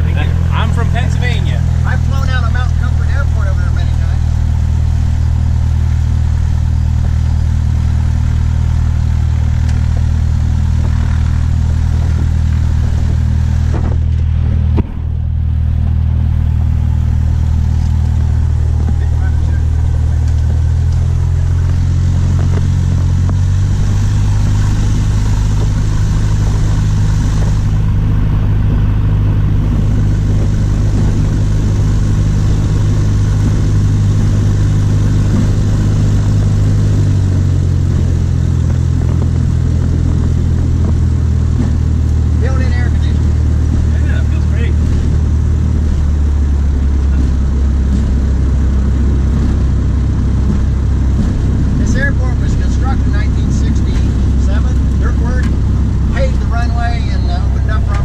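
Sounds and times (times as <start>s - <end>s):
airplane engine and propeller drone: 0.0s - 58.0s.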